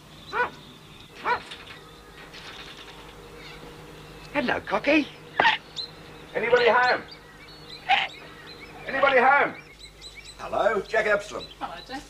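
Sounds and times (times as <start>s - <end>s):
cockatoo call: 0.3s - 3.9s, 5.2s - 9.7s.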